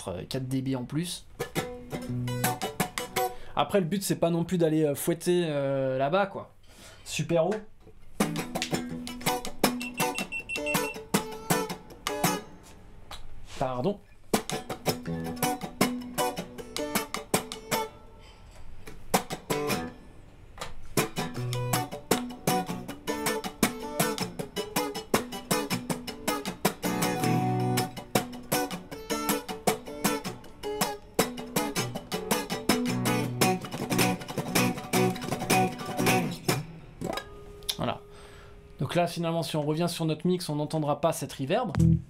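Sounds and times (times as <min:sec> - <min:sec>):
electric guitar notes and chords: 0:01.4 - 0:03.4, 0:08.2 - 0:12.6, 0:14.4 - 0:18.0, 0:21.0 - 0:37.3, 0:41.7 - 0:42.0.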